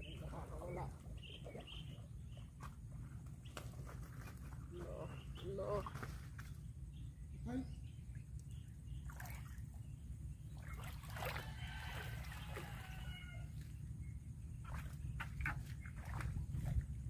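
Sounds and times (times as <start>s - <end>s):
steady low rumble: 0.0s - 17.0s
light water splashing: 8.0s - 17.0s
distant rooster crowing: 11.2s - 13.8s.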